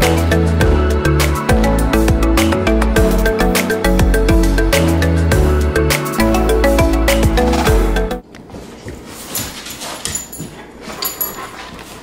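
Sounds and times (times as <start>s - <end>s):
dog clicks and rustles: 9.1s - 12.0s.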